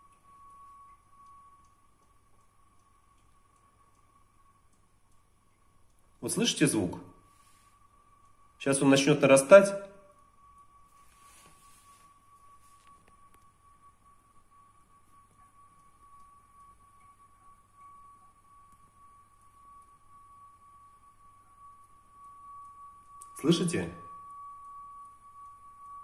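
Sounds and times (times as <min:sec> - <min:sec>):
high-pitched plumbing hum: 0:00.0 - 0:26.0.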